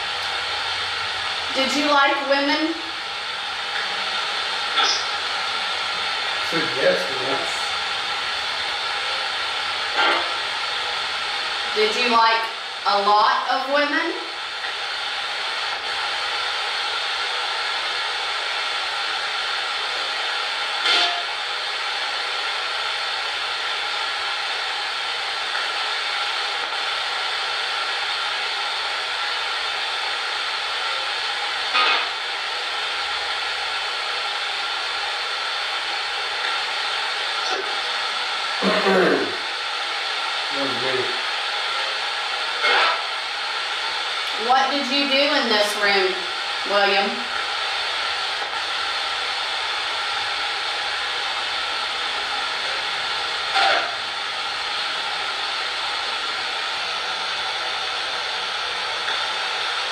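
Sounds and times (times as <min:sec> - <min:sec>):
radio static hiss: 0:00.0 - 0:59.9
snippets of broadcast voice: 0:01.5 - 0:02.9, 0:06.4 - 0:07.9, 0:11.8 - 0:14.2, 0:38.6 - 0:39.4, 0:40.6 - 0:41.2, 0:44.3 - 0:47.3.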